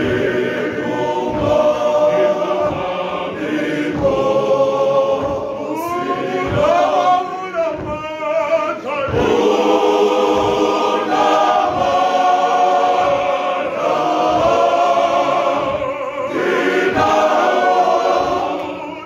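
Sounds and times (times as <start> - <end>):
male choir singing: 0.0 - 19.0.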